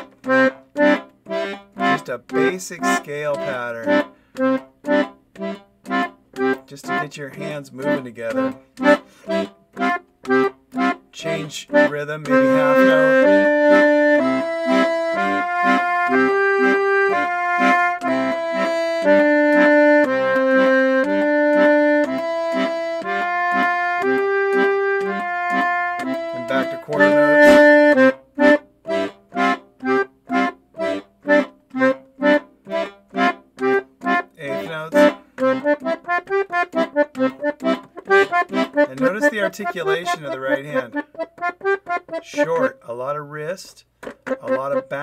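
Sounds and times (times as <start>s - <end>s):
accordion playing: 0.0s - 45.0s.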